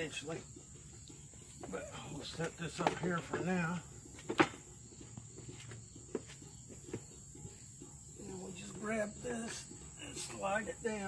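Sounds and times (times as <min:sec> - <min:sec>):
insect chirring: 0:00.0 - 0:11.0
light knocks of wooden parts: 0:00.8 - 0:07.6.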